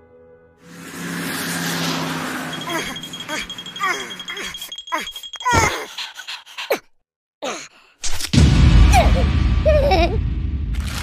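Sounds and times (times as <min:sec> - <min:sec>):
car engine hum: 0:00.6 - 0:04.3
road traffic noise: 0:00.6 - 0:06.4
squeaky cartoon vocal sounds: 0:02.6 - 0:06.9.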